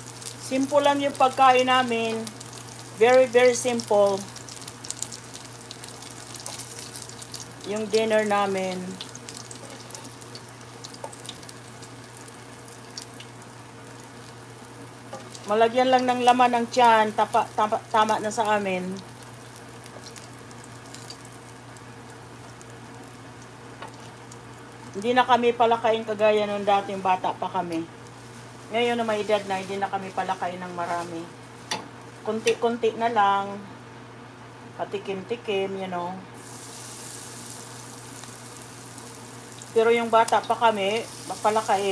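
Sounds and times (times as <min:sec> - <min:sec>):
calamari sizzling in oil: 0:00.0 - 0:32.4, 0:36.4 - 0:41.9.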